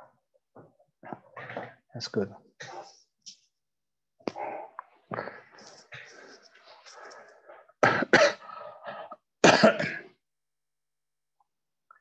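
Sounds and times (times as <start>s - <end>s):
man coughing: 7.8s - 8.5s, 9.4s - 10.2s.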